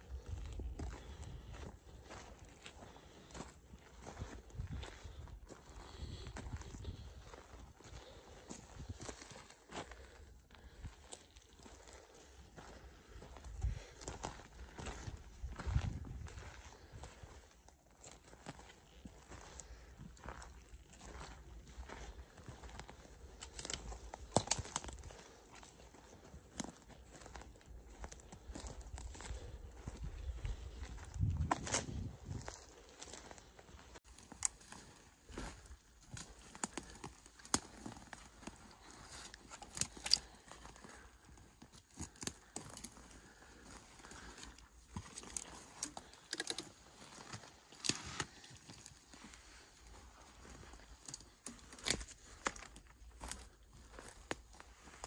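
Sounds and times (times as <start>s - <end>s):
footsteps crunching on forest floor: 0.0s - 55.0s
sticks cracking underfoot: 23.4s - 25.1s, 36.1s - 40.8s, 44.2s - 48.9s, 50.9s - 54.3s
rustling of packs and brush: 31.8s - 55.0s.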